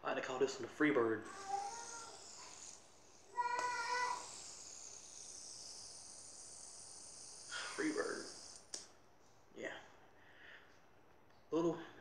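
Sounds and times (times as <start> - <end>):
fidget spinner whirring: 1.2 - 8.9.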